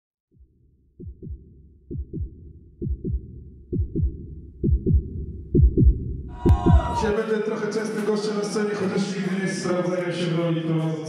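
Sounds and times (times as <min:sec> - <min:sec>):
heartbeat thumps: 0:00.4 - 0:07.1.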